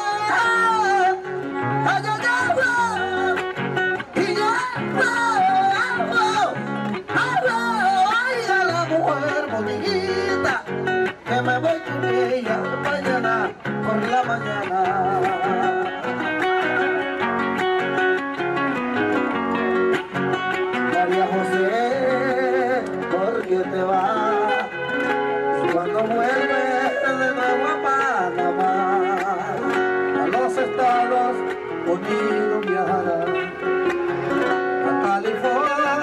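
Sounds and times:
man singing into microphone: 0.0 - 17.2, 20.7 - 36.0
acoustic guitar: 0.0 - 36.0.

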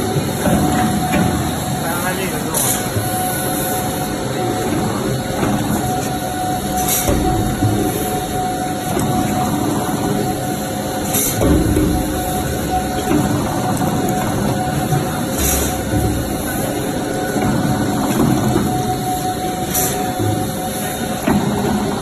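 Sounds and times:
machinery running with hum: 0.0 - 22.0.

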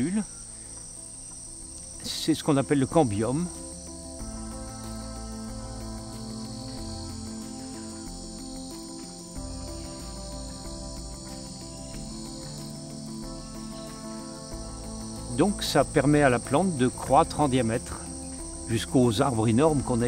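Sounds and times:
insects chirping: 0.0 - 20.0
slow music of held low notes: 0.0 - 20.0.

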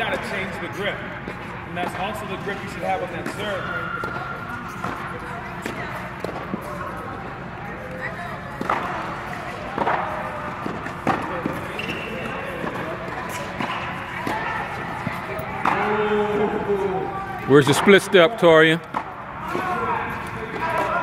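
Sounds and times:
players talking: 0.0 - 21.0
balls bouncing on hard court: 1.2 - 21.0
tennis balls struck with rackets: 3.1 - 7.3, 8.5 - 16.4, 18.8 - 21.0.

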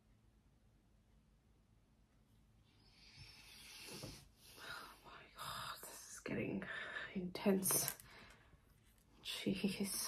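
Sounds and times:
person whispering: 4.6 - 8.0.

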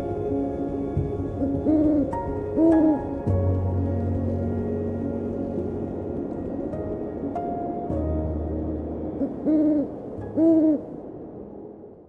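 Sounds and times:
ambient music: 0.0 - 12.0
owl hoots: 1.4 - 3.1, 9.2 - 10.9.

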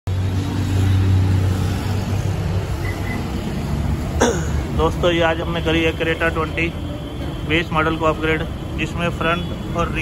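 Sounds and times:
faint high beeps: 2.8 - 3.3.

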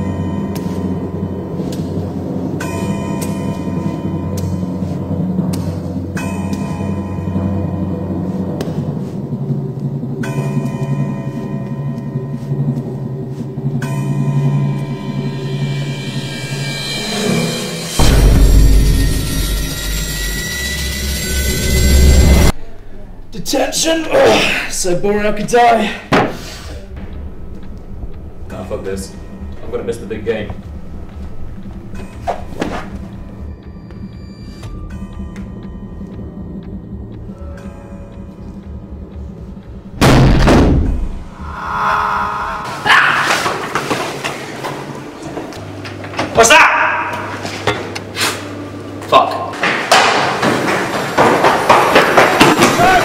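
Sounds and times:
low rumbling drone: 0.0 - 23.4, 26.5 - 46.2
thin high held tones: 10.2 - 23.1, 41.3 - 43.6
loud ringing thud: 13.8 - 22.5
sharp hit: 14.8 - 22.6, 40.0 - 44.1.

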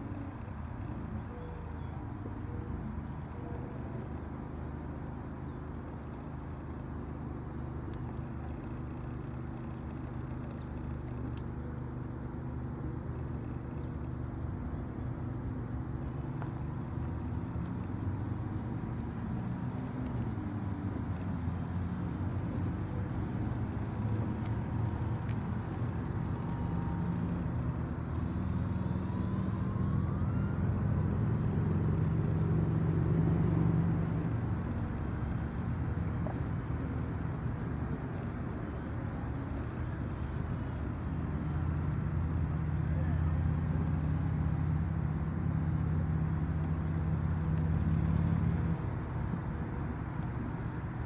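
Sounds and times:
faint whine rising in pitch: 0.0 - 51.0
model airplane drone: 0.0 - 51.0.

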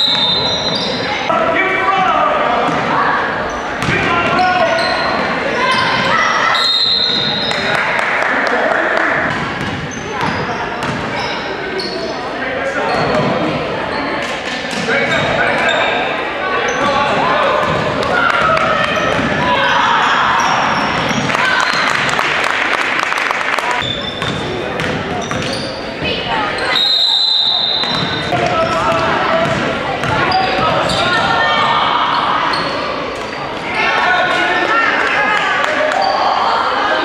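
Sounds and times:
sneakers squeaking: 0.0 - 1.3, 1.9 - 7.8, 9.2 - 22.2, 23.8 - 33.8
spectators shouting and cheering: 0.0 - 10.8, 14.9 - 23.8, 25.9 - 37.0
referee whistle blast: 6.5 - 7.5, 26.7 - 28.2.

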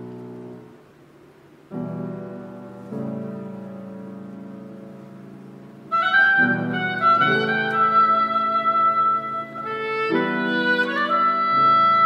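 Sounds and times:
piano chord: 0.0 - 1.0, 1.7 - 12.0
oboe high note: 5.9 - 12.0.

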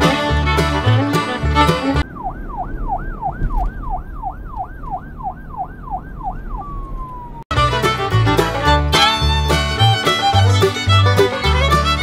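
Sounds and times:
emergency siren yelping: 2.0 - 7.5.

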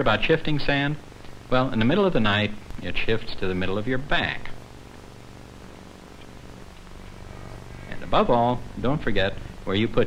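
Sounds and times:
faint hiss: 0.0 - 10.0
low hum: 0.9 - 10.0.

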